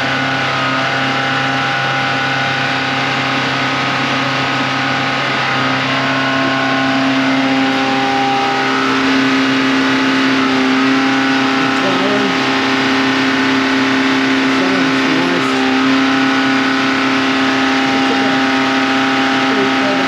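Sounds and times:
car engine running: 0:00.0 - 0:20.0.

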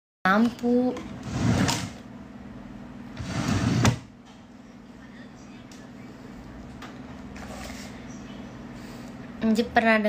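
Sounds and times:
faint low hum: 0:00.3 - 0:10.0.

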